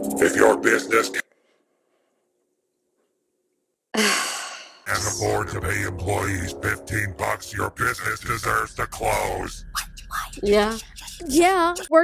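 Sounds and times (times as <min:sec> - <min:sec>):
person sighing: 0:04.0 - 0:05.2.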